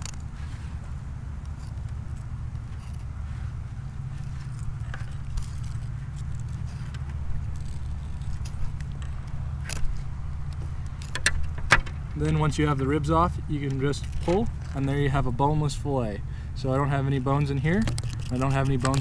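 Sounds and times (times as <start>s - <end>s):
engine idling: 0.0s - 19.0s.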